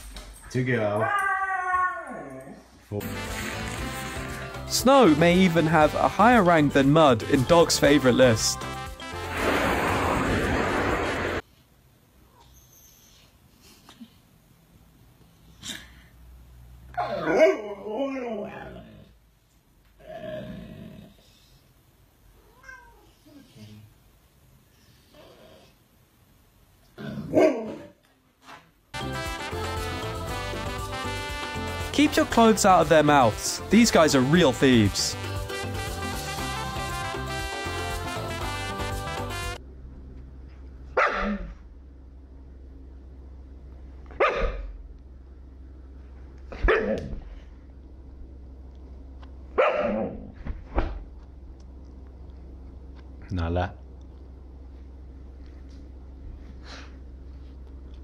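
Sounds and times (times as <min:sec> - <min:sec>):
cat yowling and growling: 0:01.0 - 0:02.6, 0:17.0 - 0:19.0
dog barking: 0:27.2 - 0:27.9, 0:41.0 - 0:41.6, 0:44.1 - 0:44.7, 0:46.6 - 0:47.2, 0:49.6 - 0:50.3.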